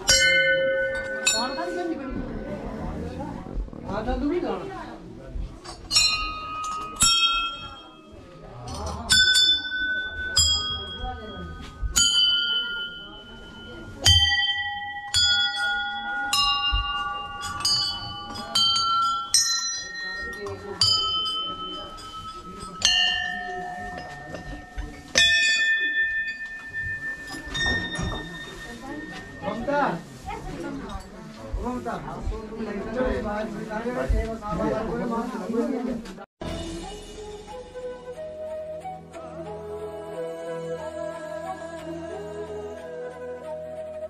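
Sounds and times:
brass bells ringing: 9.2 - 30.4.

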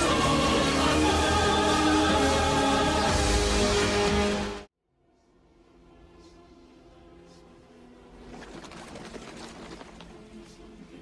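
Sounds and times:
choir singing held notes: 0.0 - 3.6.

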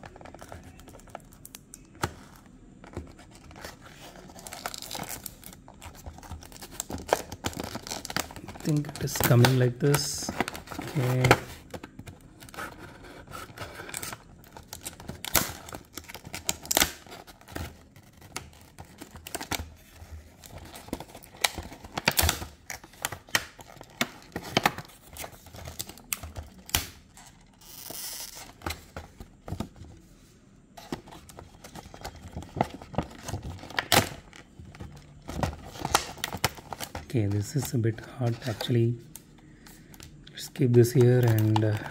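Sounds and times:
plastic blister pack crackling: 3.0 - 29.8, 30.8 - 41.9.

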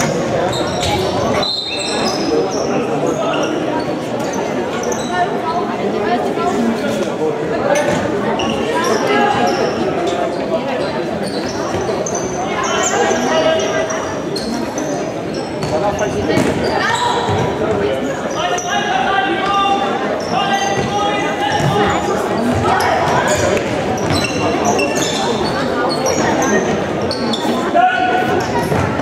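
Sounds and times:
echoing shouts: 16.6 - 25.3, 27.6 - 29.0.

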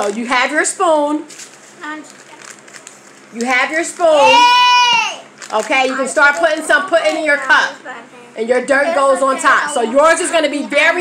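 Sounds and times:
packet crinkling: 1.3 - 4.4, 5.2 - 6.8
child's voice: 1.8 - 2.4, 7.4 - 10.9.

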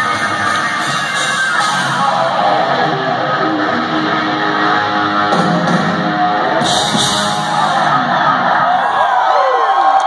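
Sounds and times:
live hard rock band playing: 0.0 - 9.2
electric guitar sustained notes: 0.0 - 9.7.

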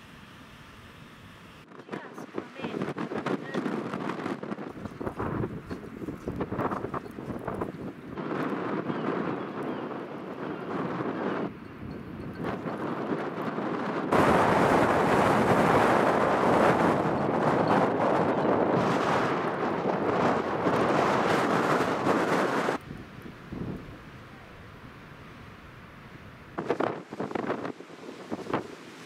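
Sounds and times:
gusting wind buffeting microphone: 1.2 - 29.0.

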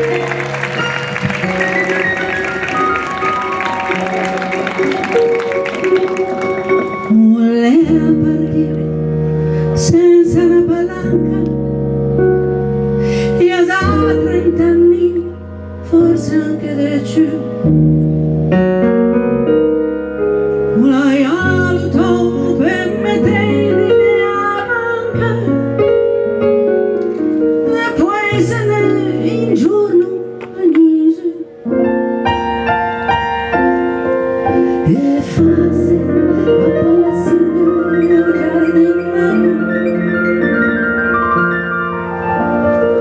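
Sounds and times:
stage piano chords: 0.0 - 43.0
woman singing long note with vibrato: 6.6 - 11.5, 34.8 - 40.4
woman singing: 7.0 - 11.7, 13.2 - 17.6, 20.7 - 25.7, 27.6 - 31.6, 34.8 - 40.7.

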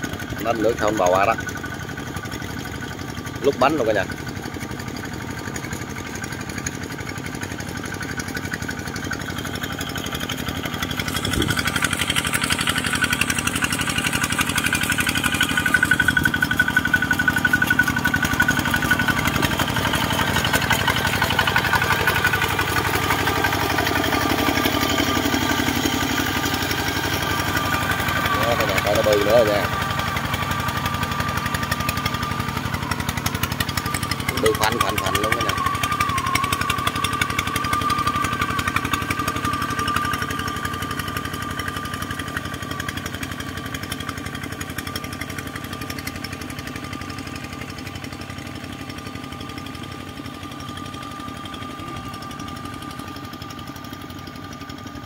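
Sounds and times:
diesel tractor engine running: 0.0 - 55.0.

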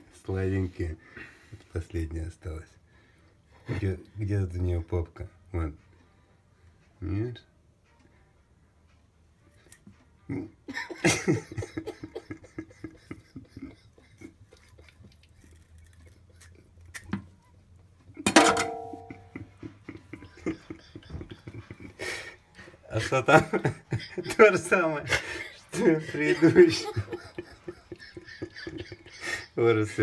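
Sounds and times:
man laughing: 10.3 - 15.4, 19.0 - 22.3, 22.9 - 30.0.

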